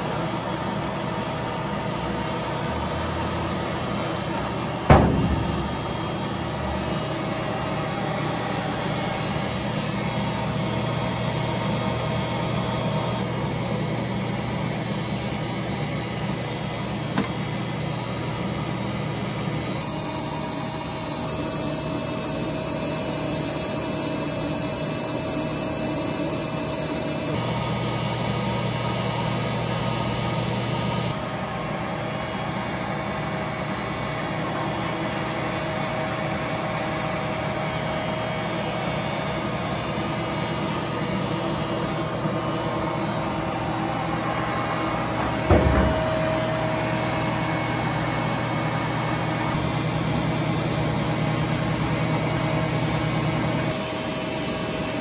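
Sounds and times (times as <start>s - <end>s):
splitting machine humming: 0.3s - 22.0s, 26.1s - 54.4s
single knock: 4.9s - 6.5s, 45.2s - 46.4s.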